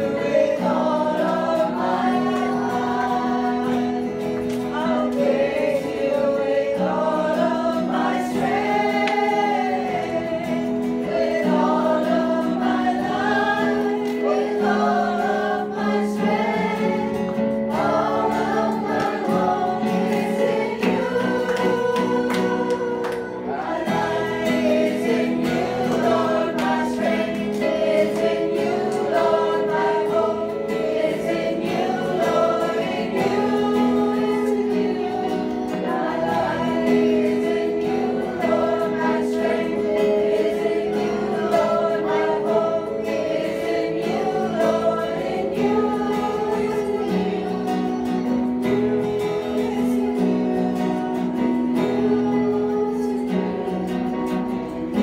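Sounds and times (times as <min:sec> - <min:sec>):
woman and man singing: 0:00.0 - 0:17.0, 0:17.7 - 0:55.0
acoustic guitar: 0:00.0 - 0:55.0
keyboard: 0:00.0 - 0:55.0.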